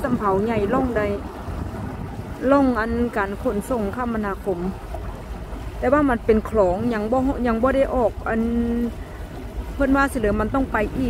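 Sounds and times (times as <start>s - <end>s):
boat engine rumbling: 0.0s - 11.0s
wind buffeting microphone: 0.0s - 11.0s.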